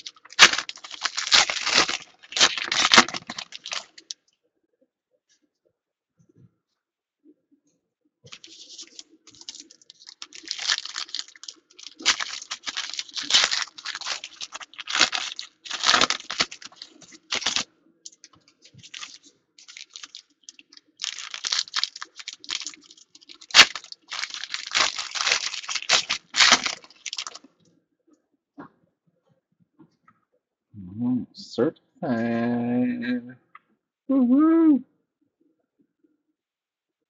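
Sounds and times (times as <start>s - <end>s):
foil wrapper tearing and crinkling: 0.0s - 4.1s, 8.3s - 27.5s.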